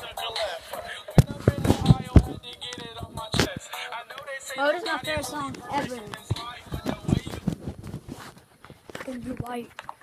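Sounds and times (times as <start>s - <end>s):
hip hop song with rapping: 0.0s - 7.8s
sharp loud thumps: 1.2s - 3.6s.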